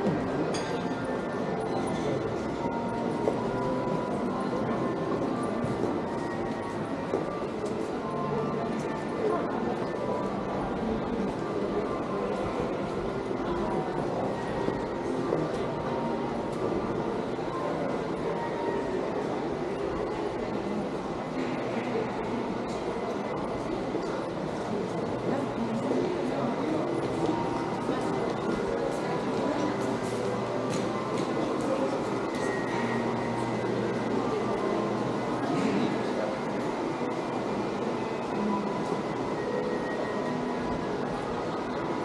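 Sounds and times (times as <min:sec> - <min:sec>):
crowd din in shopping arcade: 0:00.0 - 0:42.0
murmur of distant voices: 0:00.0 - 0:42.0.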